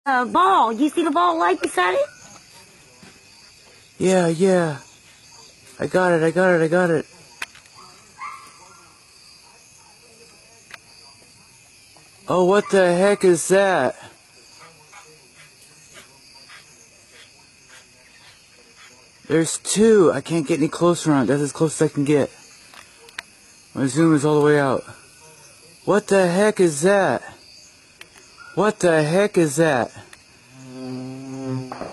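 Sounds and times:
crickets chirping: 0.1s - 31.9s.

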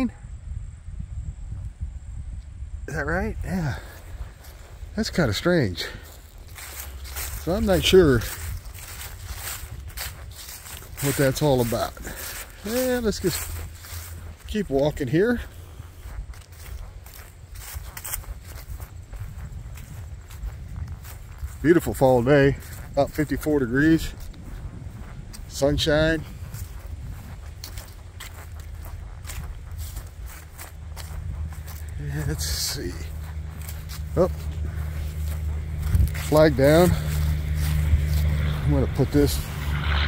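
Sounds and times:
steady low rumble: 0.2s - 40.0s
footsteps on leaves and grass: 3.1s - 40.0s.

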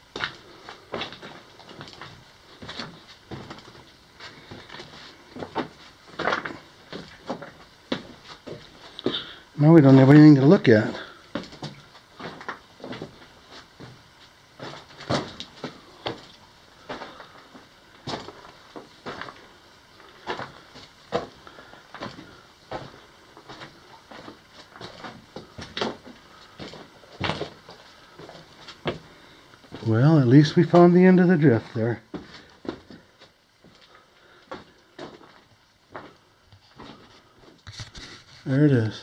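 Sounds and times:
footsteps crunching on loose rock: 0.2s - 10.0s, 10.8s - 30.0s, 31.6s - 38.3s.

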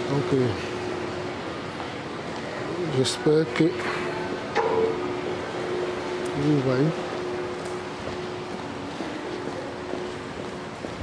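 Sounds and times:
street background noise: 0.0s - 11.0s.

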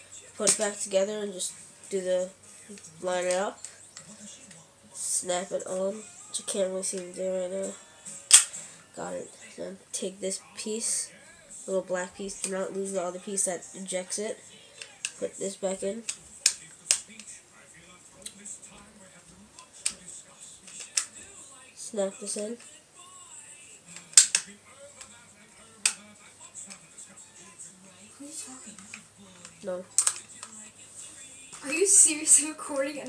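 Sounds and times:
person speaking: 0.0s - 7.8s
plastic parts clicking: 24.0s - 24.5s, 28.8s - 30.6s.

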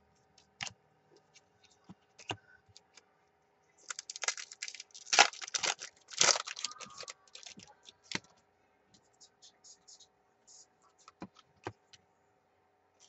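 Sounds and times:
trading cards clicking and snapping: 3.9s - 8.3s.

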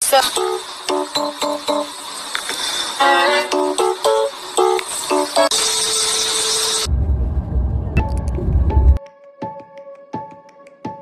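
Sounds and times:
static hiss: 0.0s - 6.9s
steady hum: 0.0s - 9.0s
deep low rumble: 6.9s - 9.0s.

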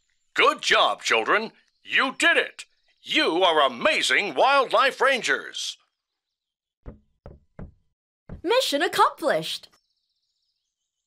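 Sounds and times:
quick knocks: 6.9s - 8.5s.

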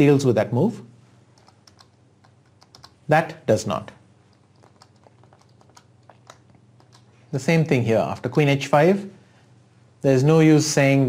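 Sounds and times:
computer keys clicking: 1.4s - 3.1s, 4.3s - 7.2s.

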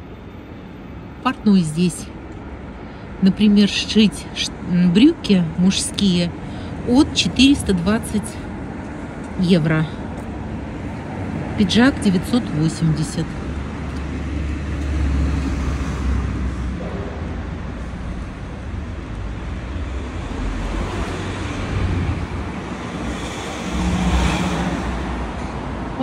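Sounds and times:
city street traffic rumble: 0.0s - 26.0s
vehicle passing: 5.9s - 26.0s.

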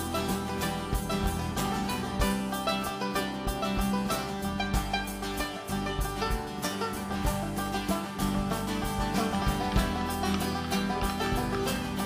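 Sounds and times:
banjo picking: 0.0s - 12.0s
resonator guitar picking: 0.0s - 12.0s
steady drum beat: 0.0s - 12.0s.

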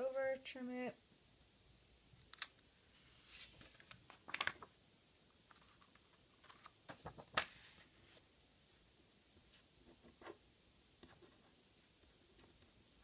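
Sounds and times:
paper rustling: 2.4s - 4.8s, 5.4s - 8.2s.

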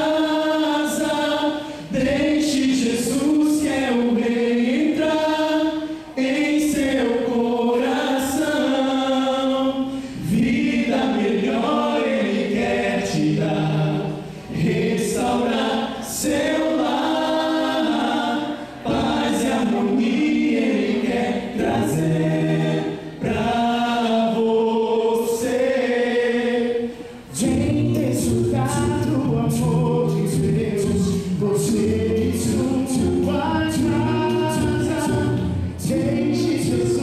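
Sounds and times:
male a cappella quartet singing: 0.0s - 37.0s.

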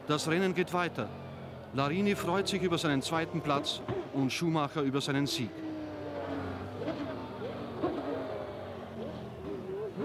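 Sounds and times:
racing car engine at low revs: 0.0s - 10.0s.

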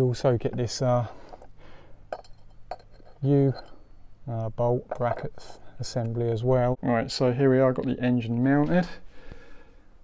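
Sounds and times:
light metallic clinks: 2.1s - 4.1s.

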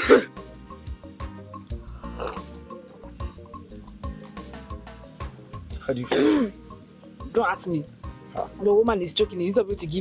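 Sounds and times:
woman coughing: 0.0s - 0.4s, 6.0s - 6.6s
background music with soft beat: 0.0s - 10.0s.

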